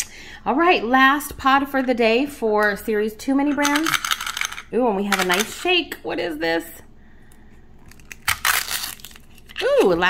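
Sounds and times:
paper wrapper crinkling: 7.8 - 10.0.

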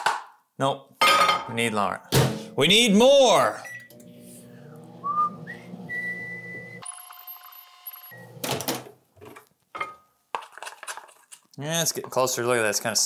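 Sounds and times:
microwave oven humming: 3.7 - 8.5
whistling music sting: 5.0 - 6.9
high electronic tone: 5.0 - 8.4.

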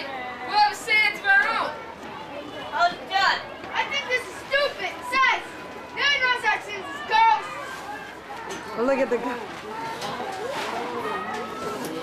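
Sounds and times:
children talking or calling: 0.0 - 12.0.

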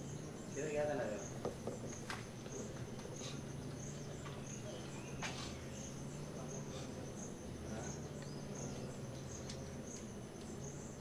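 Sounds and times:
insects chirping: 0.0 - 11.0.

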